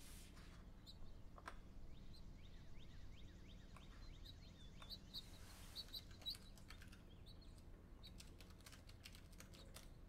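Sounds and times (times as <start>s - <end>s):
typing on laptop keyboard: 6.1s - 7.0s, 8.1s - 10.0s.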